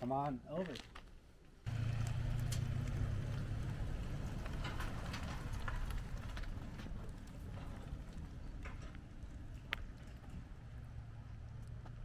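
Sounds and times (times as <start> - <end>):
pickup truck engine running: 1.7 - 7.5
trailer clicks and rattles: 1.7 - 12.0.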